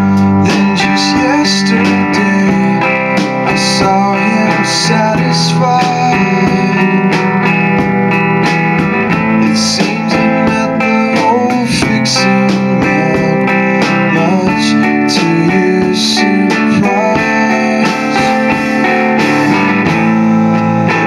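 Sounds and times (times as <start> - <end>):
drum kit: 0.0 - 21.0
electric guitar strummed chords: 0.0 - 21.0.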